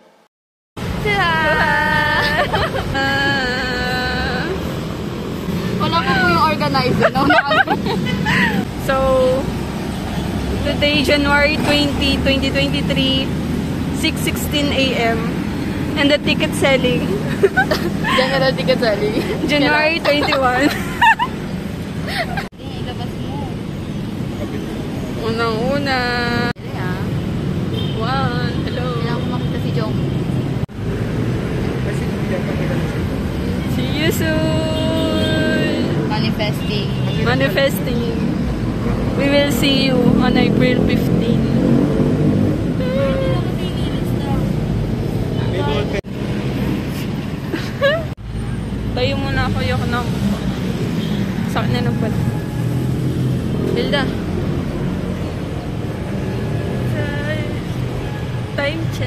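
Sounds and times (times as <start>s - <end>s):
low rumble of traffic: 0.8s - 59.0s
person speaking: 16.0s - 20.8s.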